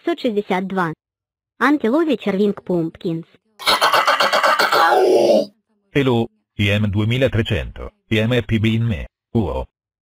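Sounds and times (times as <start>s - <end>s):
rough trembling cartoon cry: 3.6s - 5.5s.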